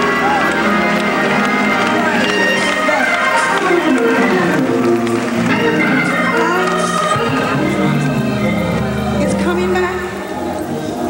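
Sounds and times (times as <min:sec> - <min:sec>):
choir singing: 0:00.0 - 0:09.3
organ chords: 0:00.0 - 0:11.0.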